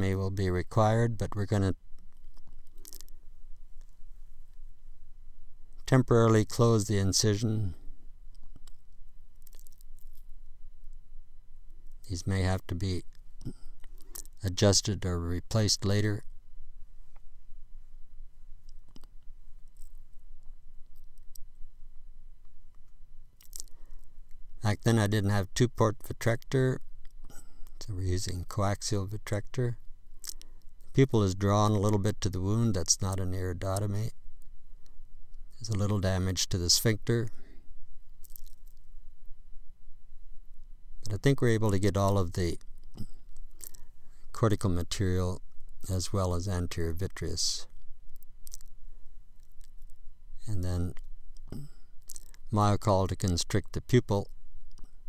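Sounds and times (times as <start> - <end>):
low steady hum: 0.0 - 55.0
faint clicks: 1.9 - 4.6, 8.3 - 11.0, 18.6 - 21.6, 22.4 - 24.4, 30.2 - 31.1, 53.2 - 55.0
faint breath: 13.4 - 14.2, 23.7 - 24.3, 27.2 - 27.8, 37.3 - 37.8, 51.5 - 52.0.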